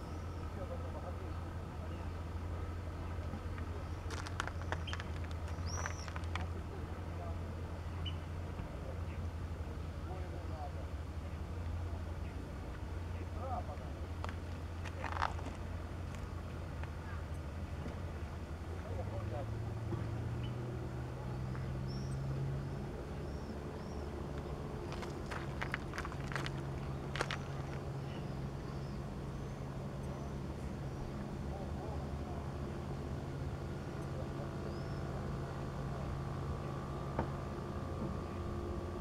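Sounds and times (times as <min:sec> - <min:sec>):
distant engine droning: 0:00.0 - 0:39.0
faint voices: 0:00.0 - 0:39.0
high bird calls: 0:03.8 - 0:06.3.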